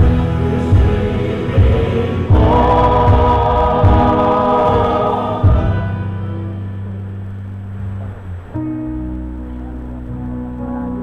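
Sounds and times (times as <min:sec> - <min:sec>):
choir singing: 0:00.0 - 0:06.2
low beat: 0:00.0 - 0:08.9
live band accompaniment: 0:00.0 - 0:11.0.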